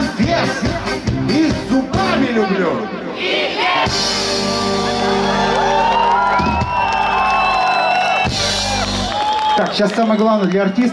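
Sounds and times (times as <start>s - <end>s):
pop-rock band holding a chord: 3.7s - 6.5s
crowd whooping and cheering: 4.4s - 10.9s.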